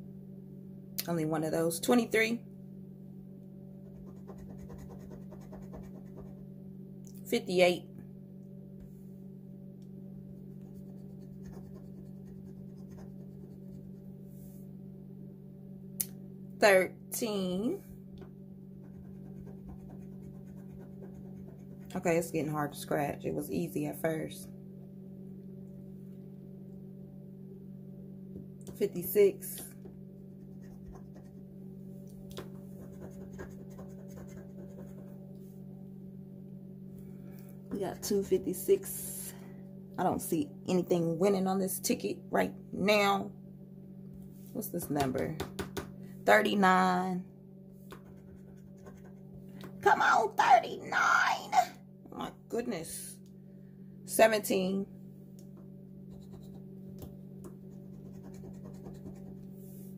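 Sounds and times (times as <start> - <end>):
low hum: 0.0 - 59.9.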